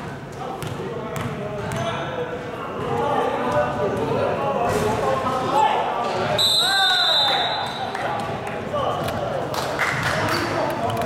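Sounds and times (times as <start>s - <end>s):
voices echoing: 0.0s - 11.0s
basketball bouncing: 0.6s - 2.0s
referee's whistle blast: 6.4s - 7.9s.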